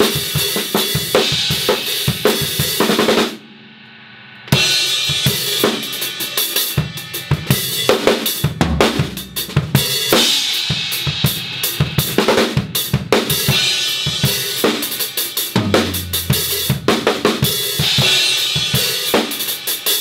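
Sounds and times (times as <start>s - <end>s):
drum kit played hard: 0.0s - 3.8s, 4.4s - 20.0s
held guitar and bass notes: 15.6s - 17.3s.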